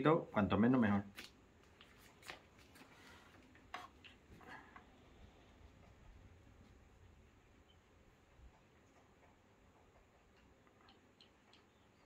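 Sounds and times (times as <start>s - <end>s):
faint plastic rustles: 1.0s - 6.0s.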